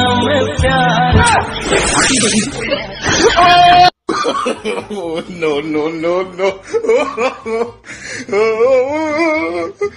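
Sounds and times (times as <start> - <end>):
voice sounds: 1.2 - 3.9
hissing noise: 1.6 - 2.6.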